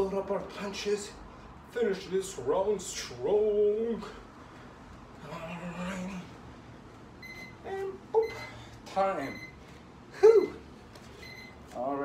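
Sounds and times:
electronic timer beeping: 0:07.2 - 0:07.6, 0:11.2 - 0:11.6
man making vocal sounds: 0:10.1 - 0:10.7.

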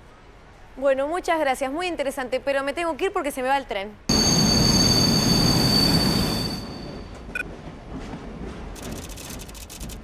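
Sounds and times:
high squeal of wheels on rail: 0:04.1 - 0:07.4
train rumbling past: 0:04.1 - 0:10.0.

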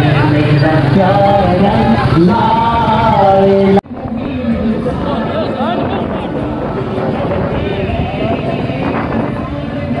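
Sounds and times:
men's voices: 0:00.0 - 0:10.0
motorcycle engines running: 0:00.0 - 0:10.0.

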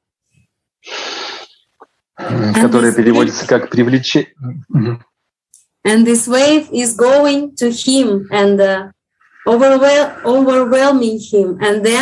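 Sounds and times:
brief vocal sound: 0:00.8 - 0:01.6
man's sharp intake of breath: 0:00.8 - 0:01.6.

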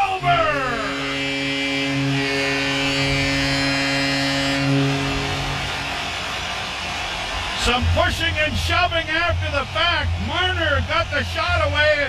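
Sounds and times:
arena goal horn blast: 0:00.0 - 0:11.8.

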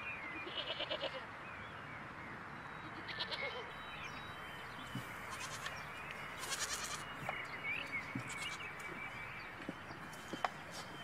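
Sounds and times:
steady outdoor hiss: 0:00.0 - 0:11.0
goats bleating: 0:05.3 - 0:05.7, 0:06.4 - 0:07.1, 0:08.2 - 0:08.7.

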